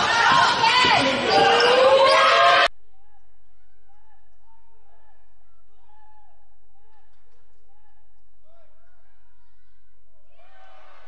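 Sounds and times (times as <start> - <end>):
people calling out: 0.0 - 11.0.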